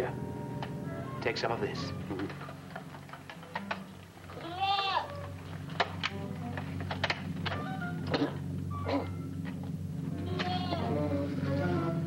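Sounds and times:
goat bleating: 4.3 - 5.2, 10.2 - 11.1.

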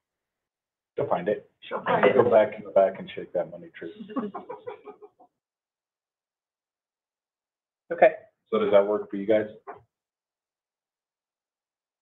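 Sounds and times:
laughter in short bursts: 3.9 - 5.2.

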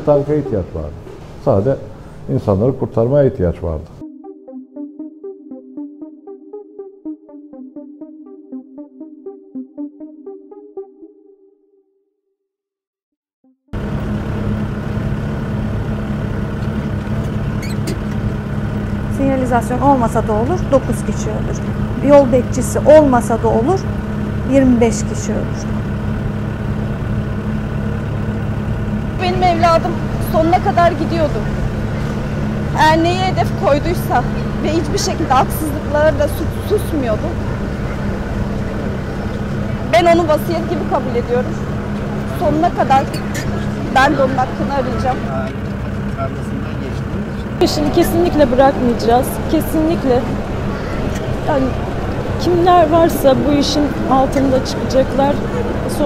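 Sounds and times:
mechanical hum and rumble: 0.0 - 4.0, 13.8 - 56.0
moving escalator: 0.0 - 4.0, 13.8 - 56.0
tractor engine running: 0.0 - 4.0, 13.7 - 56.0
constant tone: 0.0 - 5.0, 13.8 - 56.0
woman's voice: 19.1 - 23.9, 24.5 - 25.7, 29.2 - 31.5, 32.7 - 37.4, 39.9 - 41.6, 42.3 - 45.3, 47.6 - 50.3, 51.5 - 51.8, 52.4 - 56.0.

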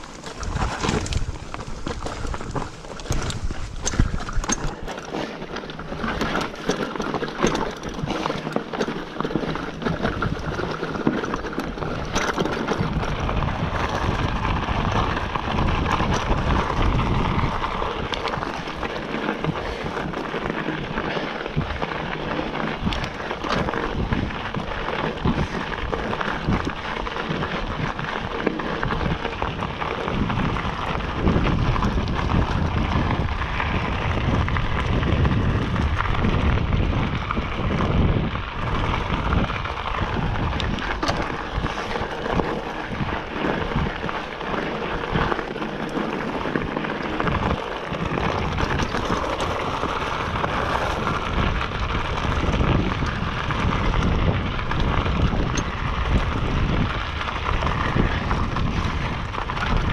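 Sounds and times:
bike frame rattling: 0.0 - 59.9
tyres crunching over stones: 0.0 - 59.9.

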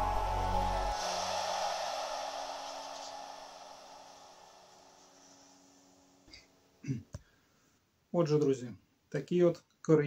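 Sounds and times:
hiss: 0.0 - 6.4.

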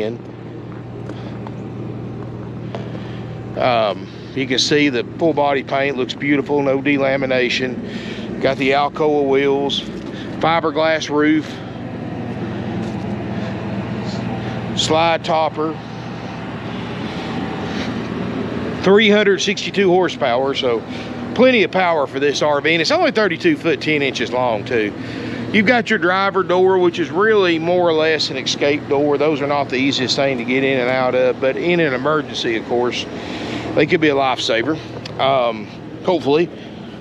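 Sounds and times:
motorhome engine idling: 0.0 - 37.0.

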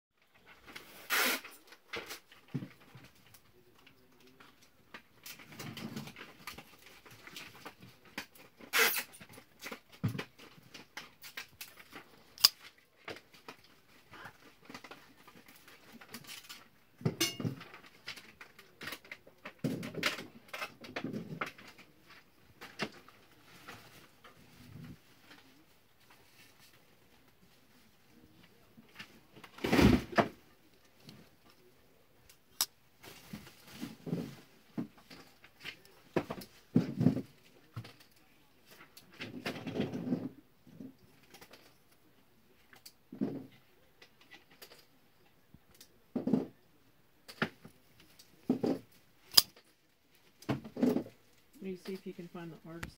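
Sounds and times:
folding knife clicks and snaps: 12.4 - 12.6.

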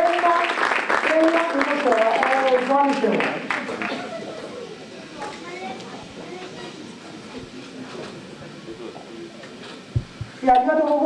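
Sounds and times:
steady background hiss: 0.0 - 11.0
murmur of voices: 1.1 - 11.0.

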